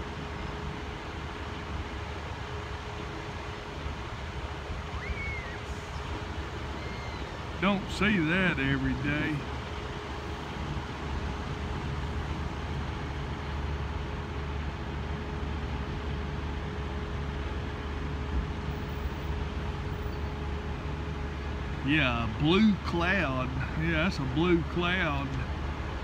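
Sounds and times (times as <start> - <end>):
low rumble of vehicles: 0.0 - 26.0.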